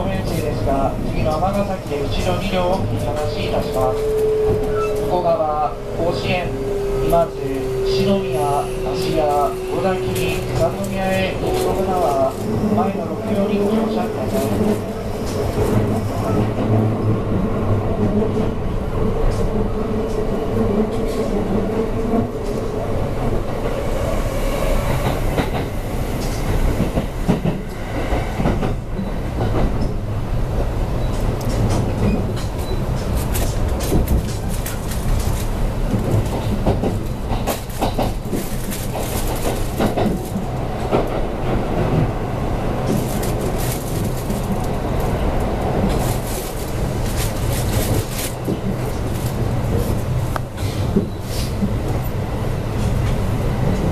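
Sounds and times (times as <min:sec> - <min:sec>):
clickety-clack over rail joints: 0:00.0 - 0:18.6, 0:19.2 - 0:23.8, 0:24.8 - 0:53.9
wheel-on-rail rumble: 0:00.0 - 0:53.9.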